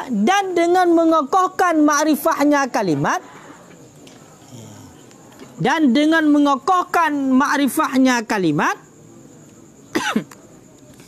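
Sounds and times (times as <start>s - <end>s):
man clearing throat: 9.9s - 10.4s.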